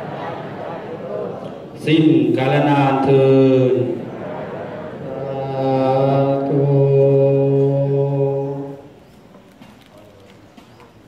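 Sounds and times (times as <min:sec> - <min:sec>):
low voices chanting in monotone: 0:00.0 - 0:09.0.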